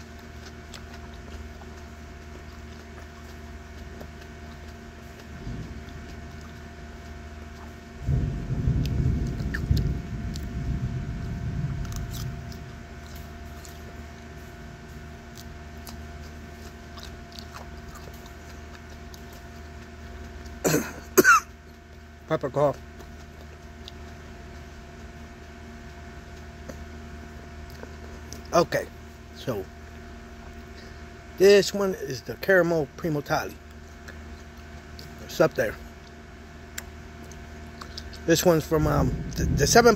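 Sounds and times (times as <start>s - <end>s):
steady background hum: 0.0s - 39.9s
low rumble: 5.2s - 14.2s, 38.5s - 39.9s
man coughing: 20.6s - 21.6s.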